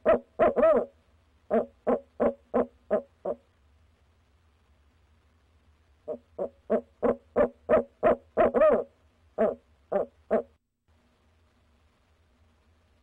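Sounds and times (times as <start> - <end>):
owl hooting: 0.0 - 3.4, 6.0 - 10.6.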